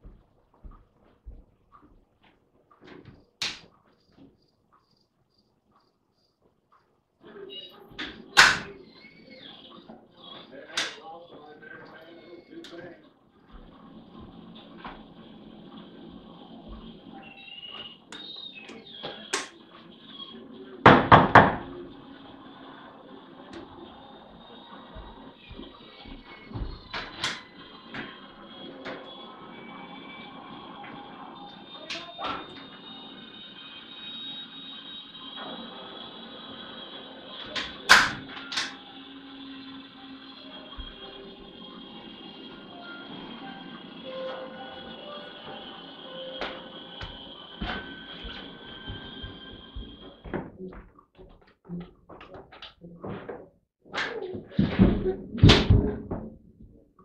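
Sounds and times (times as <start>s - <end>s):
background music drone: 21.7s - 50.3s.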